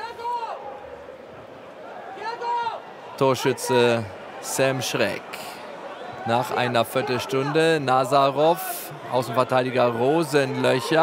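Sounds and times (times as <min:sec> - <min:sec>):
stadium crowd background noise: 0:00.0 - 0:11.0.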